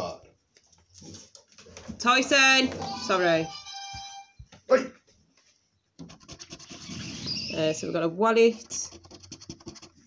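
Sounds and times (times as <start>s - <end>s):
coin scratching a scratch card: 6.0s - 7.6s, 8.6s - 10.0s.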